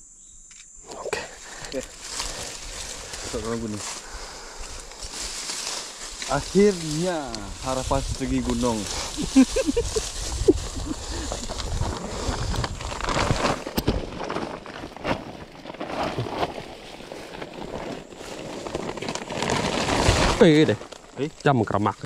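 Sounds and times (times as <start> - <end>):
plastic sack rustling: 1.5 - 21.6.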